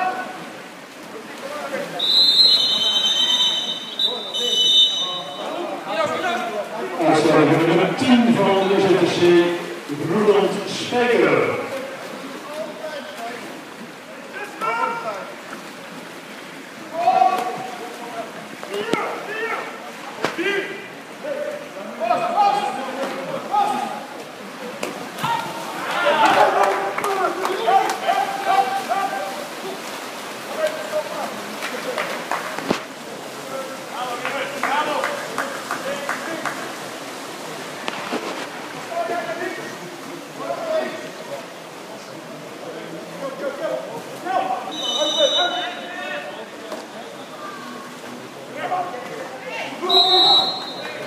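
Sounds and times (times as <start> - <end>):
people shouting in pool hall: 16.9 - 17.8, 22.1 - 24.2, 25.2 - 29.5, 48.8 - 51.0.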